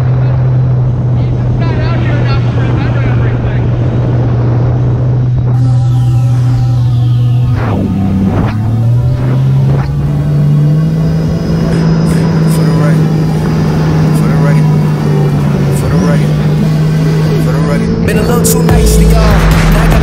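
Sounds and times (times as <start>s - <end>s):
jet ski engine droning: 0.0s - 20.0s.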